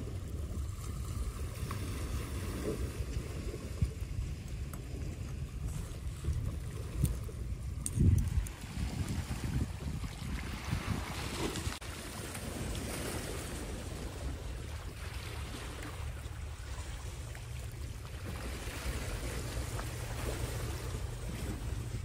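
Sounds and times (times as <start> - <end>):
wind buffeting microphone: 0.0 - 11.9
waves washing on stony shore: 0.0 - 22.0.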